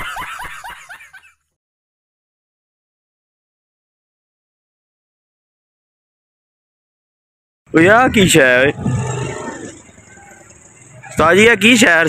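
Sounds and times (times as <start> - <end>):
faint outdoor background: 0.0 - 1.6, 7.7 - 12.0.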